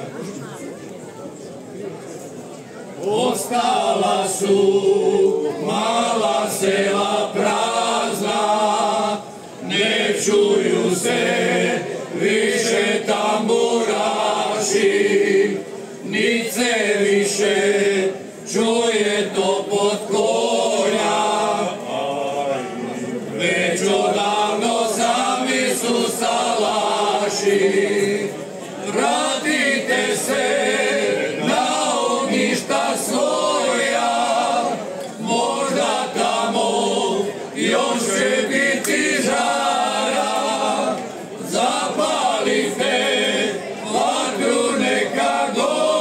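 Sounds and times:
men singing a cappella: 3.1s - 22.8s, 23.4s - 28.3s, 28.9s - 46.0s.

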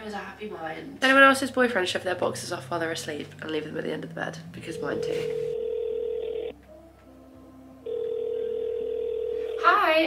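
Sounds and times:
telephone ringing tone: 4.8s - 6.6s, 7.8s - 9.8s.

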